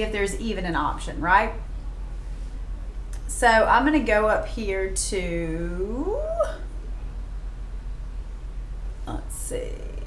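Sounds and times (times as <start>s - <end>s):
faint room hiss: 0.0s - 10.0s
mains hum: 0.0s - 10.0s.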